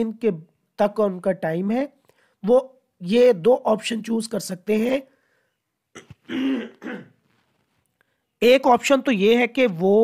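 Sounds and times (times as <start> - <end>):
person clearing throat: 6.0 - 7.2.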